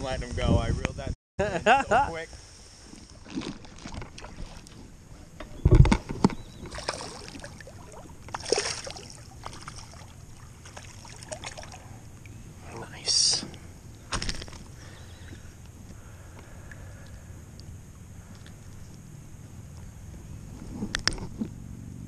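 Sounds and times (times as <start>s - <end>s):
water splashing and lapping: 2.9s - 5.0s, 6.0s - 12.7s.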